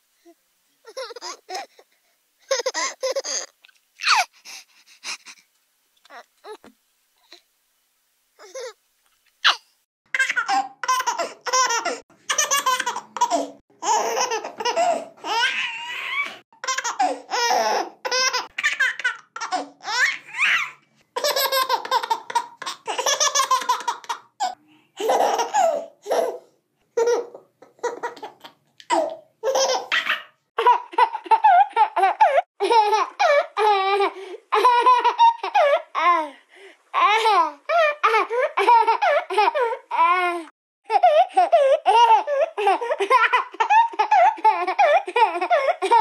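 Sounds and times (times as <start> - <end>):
baby laughing: 0.8 - 1.8, 2.4 - 4.3, 9.4 - 9.6, 10.2 - 26.4, 27.0 - 36.2, 37.0 - 40.3, 40.9 - 46.0.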